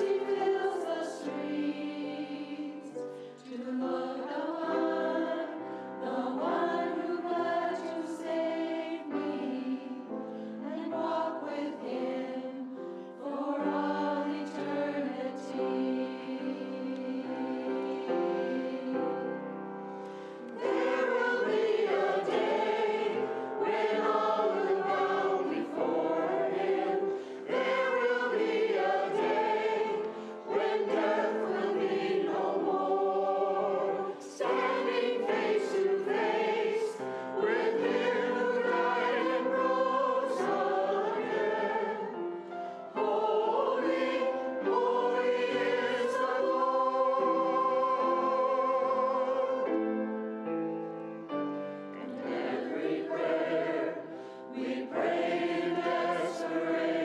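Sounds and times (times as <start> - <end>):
choir singing: 0.0 - 57.0
piano accompaniment: 4.8 - 57.0.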